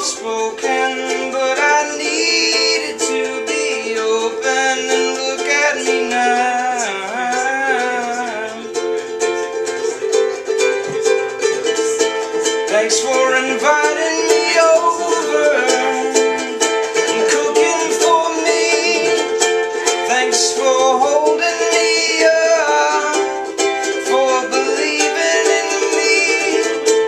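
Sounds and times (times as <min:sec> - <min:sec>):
ukulele strumming chords: 0:00.0 - 0:27.0.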